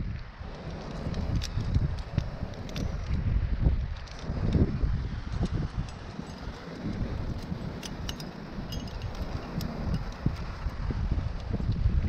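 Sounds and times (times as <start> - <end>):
wind rumbling on microphone: 0.0 - 12.0
metal climbing gear clinking: 0.4 - 3.3, 4.0 - 11.8.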